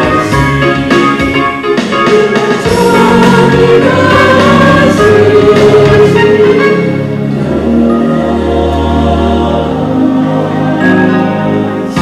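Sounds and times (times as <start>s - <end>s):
choir singing a hymn: 2.0s - 12.0s.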